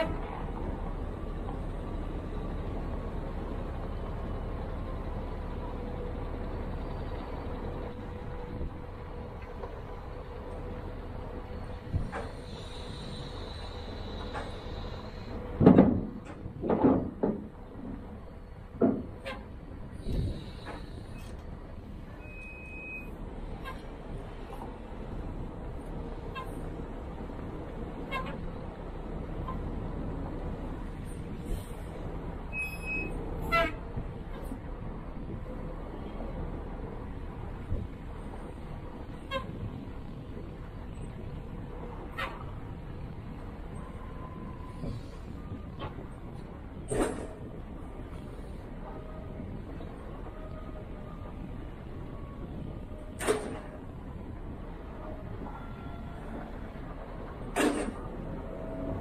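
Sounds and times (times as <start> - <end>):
forklift engine running: 0.0 - 59.0
heavy knocks and clanks: 15.6 - 18.1, 18.7 - 19.2.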